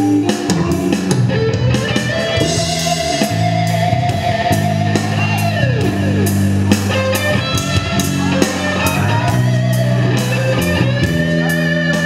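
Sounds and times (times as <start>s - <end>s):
electric bass: 0.0s - 12.0s
electric guitar lead: 0.0s - 12.0s
steady drum beat: 0.0s - 12.0s.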